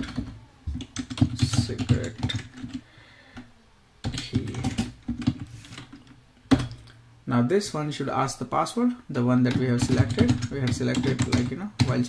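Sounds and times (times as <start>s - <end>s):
typing on computer keyboard: 0.0s - 2.8s, 4.0s - 6.8s, 9.5s - 12.0s.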